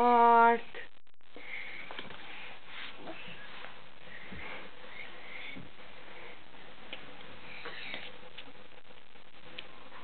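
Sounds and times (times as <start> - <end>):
soft sniffs and breaths: 1.4 - 8.3.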